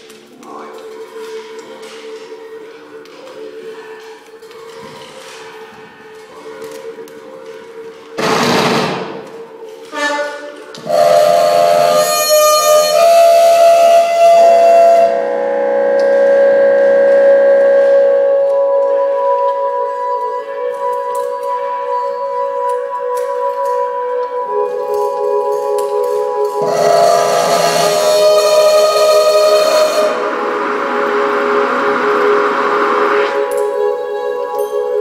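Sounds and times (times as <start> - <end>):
held drone tones: 0.0 - 35.0
loud noise and tones: 10.8 - 21.3, 25.0 - 35.0
steady ringing tones: 23.8 - 35.0
short noisy bursts: 26.6 - 34.0.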